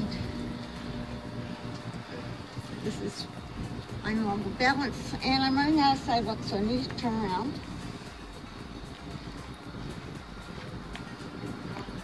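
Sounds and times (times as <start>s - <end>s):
low rumble and hiss outdoors: 0.0s - 12.0s.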